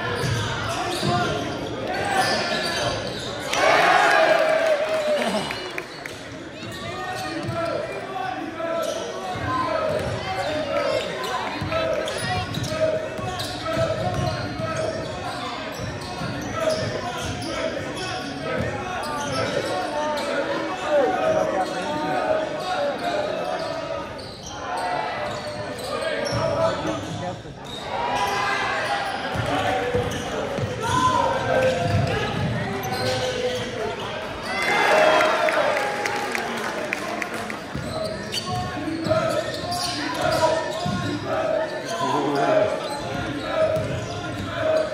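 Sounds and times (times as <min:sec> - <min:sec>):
voices echoing in a hall: 0:00.0 - 0:44.9.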